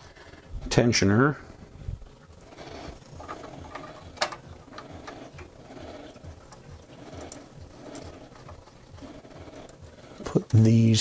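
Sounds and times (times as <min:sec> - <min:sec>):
plastic and metal parts clicking: 0:03.2 - 0:05.5.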